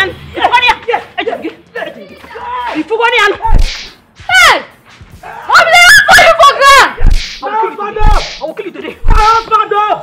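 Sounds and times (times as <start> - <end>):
woman shouting angrily: 4.3 - 4.7, 5.3 - 8.2.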